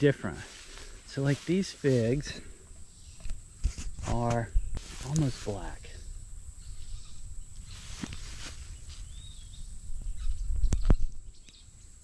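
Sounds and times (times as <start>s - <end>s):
faint bird chirp: 2.2s - 3.6s, 6.0s - 12.0s
wind rumbling on microphone: 2.7s - 11.5s.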